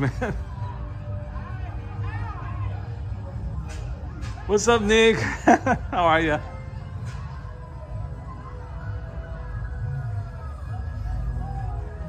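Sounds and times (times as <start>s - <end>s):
parade music from tv speakers: 0.0s - 12.0s.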